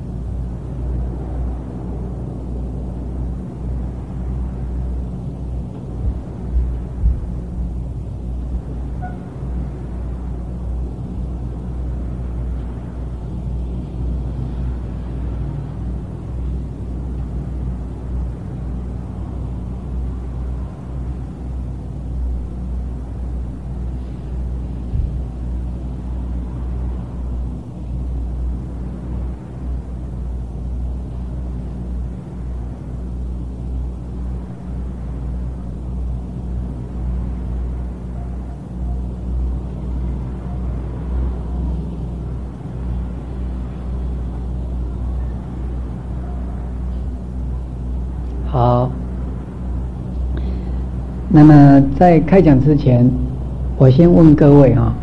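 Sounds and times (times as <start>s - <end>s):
low hum and rumble: 0.0s - 55.0s.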